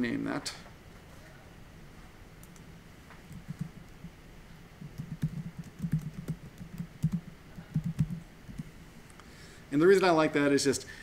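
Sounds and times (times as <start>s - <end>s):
computer keyboard typing: 2.4s - 2.6s, 3.3s - 4.1s, 4.8s - 8.7s.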